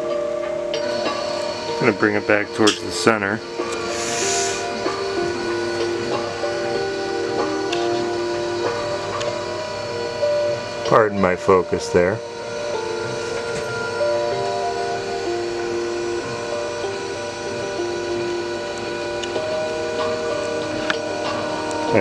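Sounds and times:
motors whining: 0.0s - 22.0s
music: 0.0s - 22.0s.

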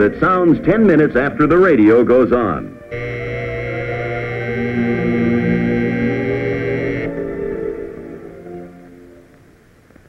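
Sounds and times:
soft radio music: 0.0s - 10.0s
alarm buzzer: 2.9s - 7.1s.

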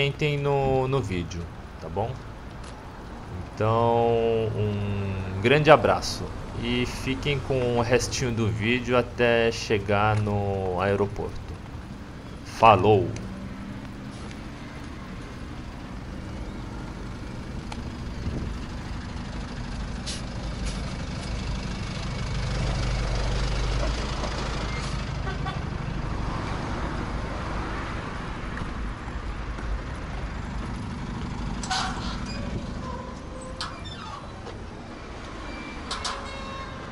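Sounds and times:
road traffic passing: 0.0s - 36.9s
wind rumble on microphone: 17.5s - 18.8s.

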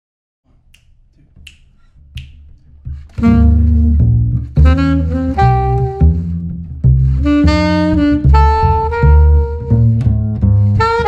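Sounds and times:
finger snaps: 0.6s - 2.6s.

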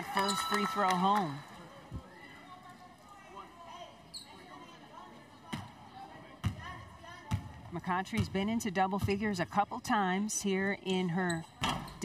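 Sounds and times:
high shoe squeak: 4.1s - 4.5s.

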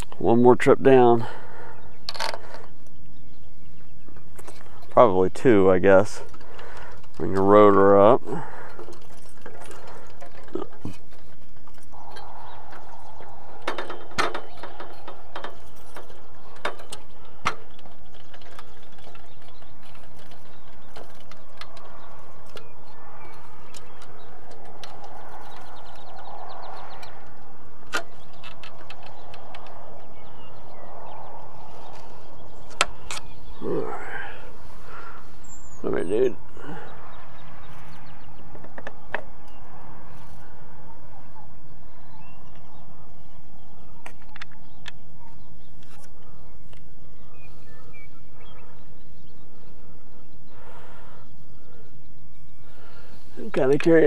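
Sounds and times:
metal ladder clanking: 8.6s - 21.7s
wind on microphone: 11.0s - 33.6s.

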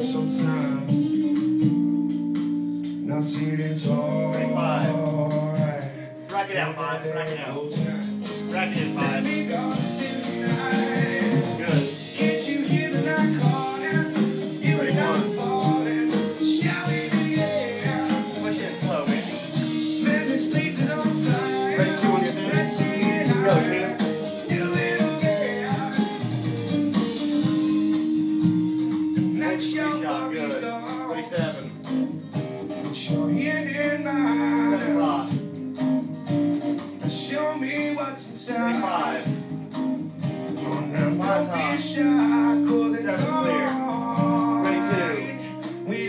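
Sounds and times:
man singing: 0.0s - 1.8s, 3.0s - 27.9s, 29.2s - 31.8s, 32.8s - 35.5s, 37.0s - 39.4s, 40.6s - 46.0s
guitar: 0.0s - 46.0s
live rock band playing: 0.0s - 46.0s
steady beat: 0.0s - 46.0s.

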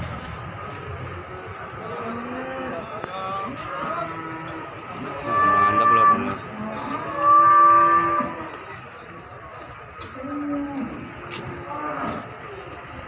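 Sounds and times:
cattle mooing: 4.0s - 8.6s.

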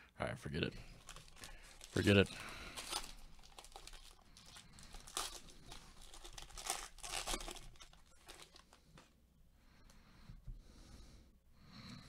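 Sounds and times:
plastic wrapper crinkling and tearing: 0.9s - 9.1s.

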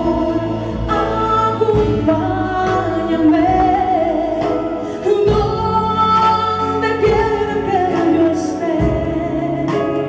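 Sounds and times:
live band: 0.0s - 10.0s.

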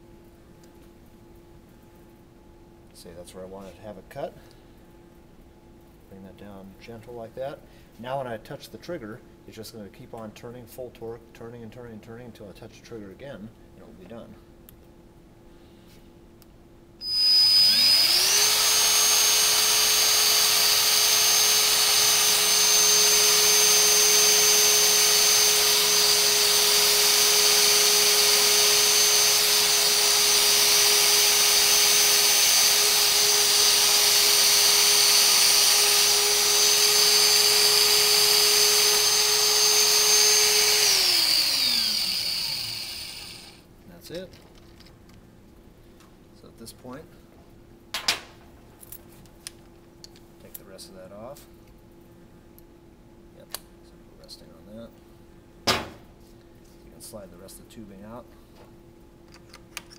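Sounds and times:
power tool motor whining: 17.0s - 43.6s.

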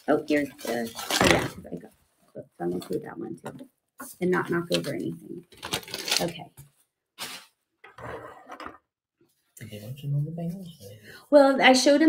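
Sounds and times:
packing paper rustling: 0.2s - 1.7s, 4.5s - 6.5s, 7.2s - 7.5s.

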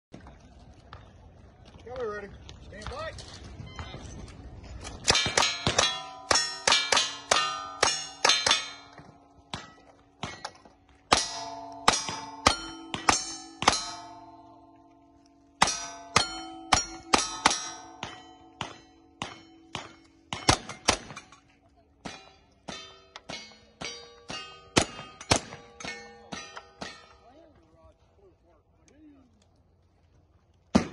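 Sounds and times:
steel plate ringing: 5.1s - 21.4s, 22.1s - 27.3s.

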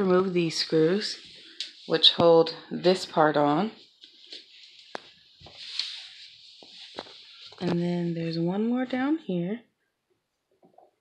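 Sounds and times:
soft rubbing hiss: 0.0s - 8.7s.

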